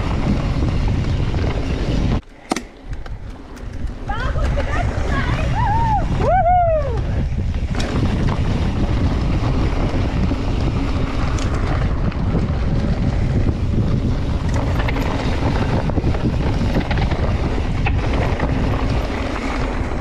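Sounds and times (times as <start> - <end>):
tyres rumbling on dirt: 0.0 - 2.2, 2.8 - 20.0
wind buffeting microphone: 0.0 - 2.2, 2.8 - 20.0
bike rattles and clicks: 0.0 - 20.0.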